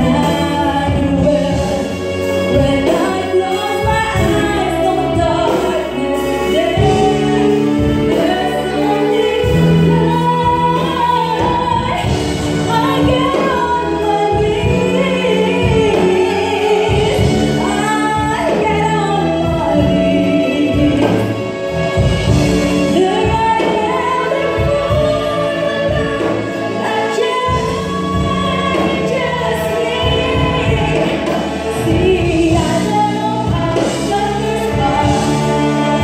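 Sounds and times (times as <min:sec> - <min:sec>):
live band with electric bass: 0:00.0 - 0:36.0
woman singing into a microphone: 0:00.0 - 0:36.0.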